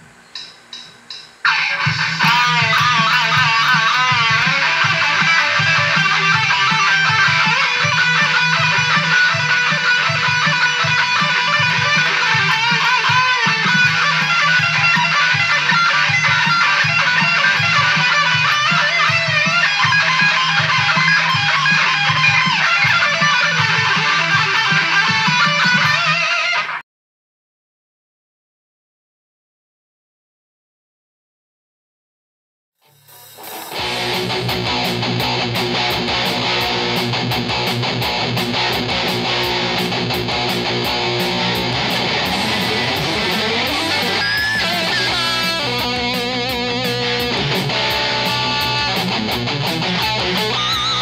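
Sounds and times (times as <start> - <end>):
heavy electric guitar jam: 0.0 - 26.8, 33.0 - 51.0.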